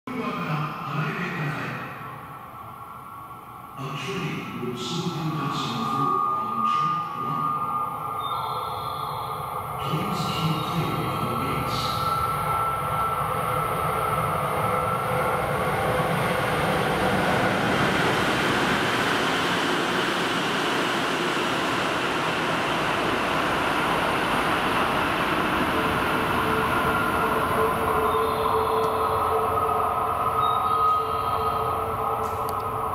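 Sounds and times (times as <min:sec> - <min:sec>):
train passing at high speed: 0:00.2 - 0:32.9
steady whining tones: 0:01.9 - 0:32.9.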